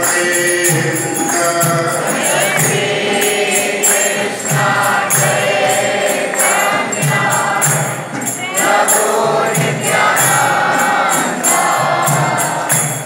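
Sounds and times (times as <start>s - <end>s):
drum beating: 0.0s - 13.0s
group chanting a melody: 0.0s - 13.0s
hand cymbals jingling: 0.0s - 13.0s.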